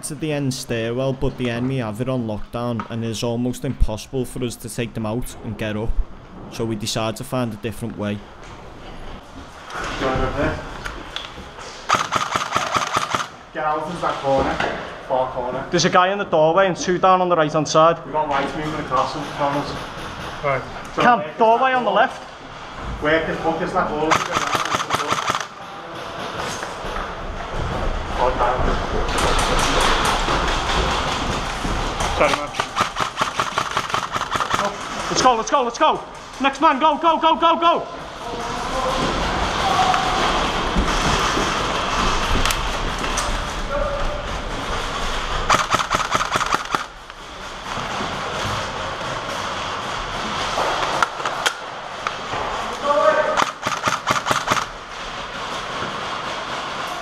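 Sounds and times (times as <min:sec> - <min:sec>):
airsoft rifles firing bursts: 0:11.9 - 0:13.4, 0:24.1 - 0:25.6, 0:32.2 - 0:35.0, 0:45.5 - 0:47.0, 0:53.3 - 0:54.8.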